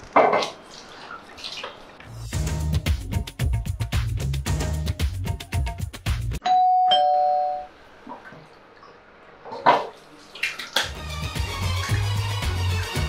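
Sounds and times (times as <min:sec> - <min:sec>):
music with heavy beat: 0:02.3 - 0:06.4, 0:11.0 - 0:13.0
doorbell two-note chime: 0:06.4 - 0:07.7.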